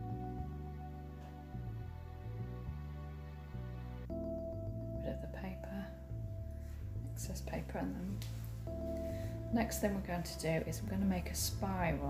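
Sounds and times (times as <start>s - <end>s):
soft instrumental music: 0.0s - 12.0s.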